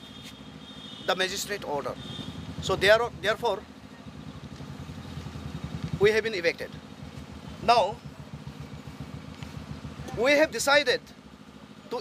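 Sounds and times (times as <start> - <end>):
engine idling rumble: 0.0 - 12.0.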